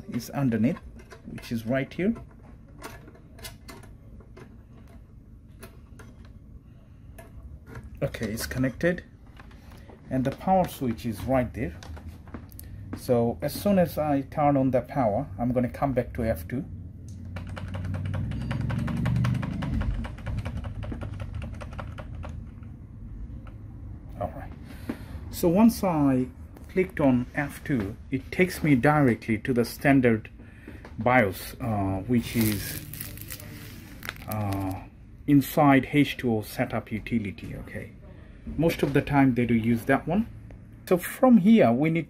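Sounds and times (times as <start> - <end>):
rapid keyboard key presses: 17.2 - 22.8.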